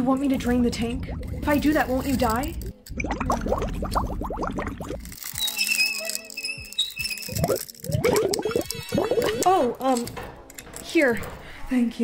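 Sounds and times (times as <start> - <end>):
water bubbling and gurgling: 0.8 - 1.7, 2.5 - 5.1, 7.3 - 9.5.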